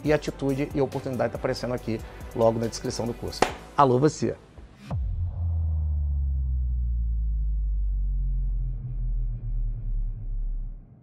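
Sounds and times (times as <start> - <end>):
deep bass rumble effect: 4.9 - 11.0.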